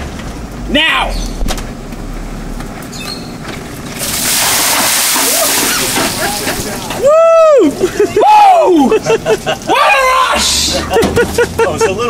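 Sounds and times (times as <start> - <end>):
ice water splashing: 3.9 - 7.0.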